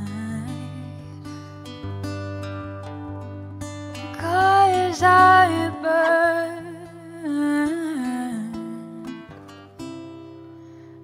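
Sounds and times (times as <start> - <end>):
acoustic guitar notes: 0.0 - 11.0.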